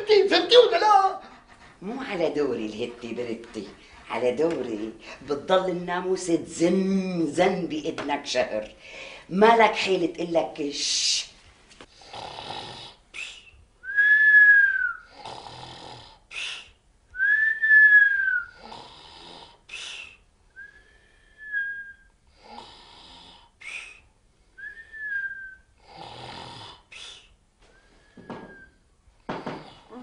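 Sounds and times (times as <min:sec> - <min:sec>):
man snoring and whistling: 0:12.0 - 0:27.3.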